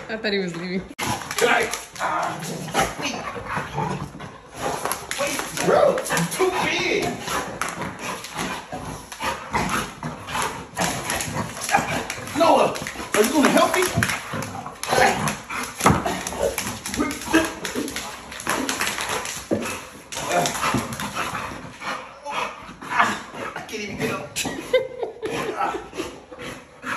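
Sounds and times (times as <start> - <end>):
dogs making play noises: 0.8 - 26.9.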